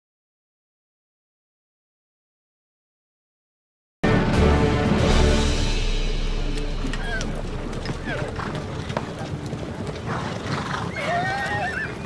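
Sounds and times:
background music: 4.0 - 12.0
horse hooves clopping: 6.2 - 12.0
horse whinnying: 6.9 - 12.0.

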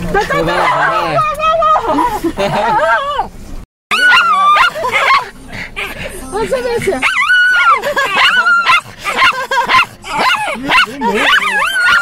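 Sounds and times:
dog howling and yipping: 0.5 - 1.2, 3.9 - 5.3, 7.0 - 12.0.

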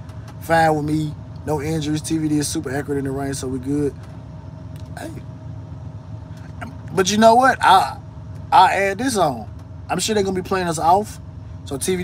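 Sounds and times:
faint steady hum: 0.0 - 12.0
truck engine idling: 0.0 - 12.0.

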